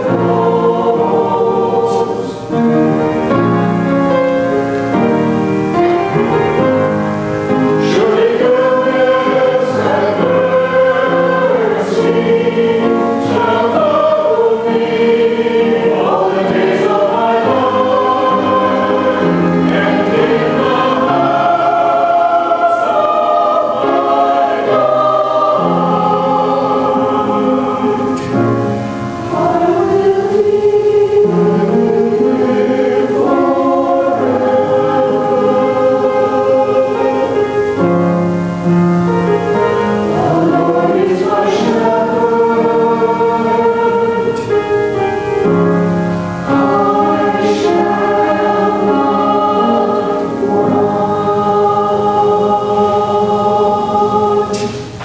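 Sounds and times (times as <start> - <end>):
mixed choir singing in parts: 0.0 - 55.0.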